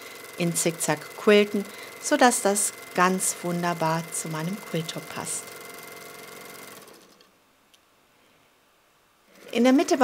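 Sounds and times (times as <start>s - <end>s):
sewing machine stitching: 0.0s - 7.3s, 9.3s - 10.0s.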